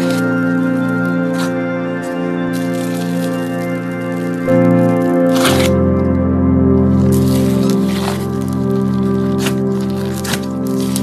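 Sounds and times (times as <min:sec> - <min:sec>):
slime squelching: 0:00.0 - 0:05.9, 0:06.8 - 0:11.0
music of sustained chords: 0:00.0 - 0:11.0.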